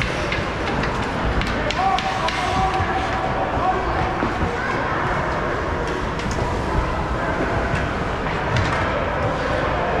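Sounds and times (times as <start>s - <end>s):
indoor ice arena rumble: 0.0s - 10.0s.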